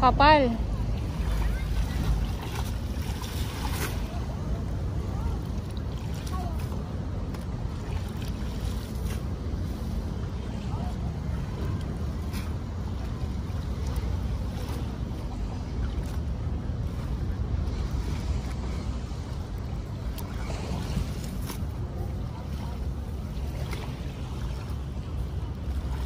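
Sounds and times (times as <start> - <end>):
small waves at shoreline: 0.0 - 26.0
wind rumbling on microphone: 0.0 - 26.0.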